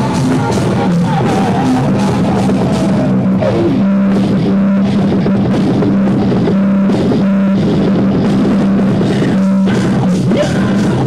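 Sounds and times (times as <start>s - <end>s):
guitar note sliding down: 0.0s - 11.0s
rock band playing loud: 0.0s - 11.0s.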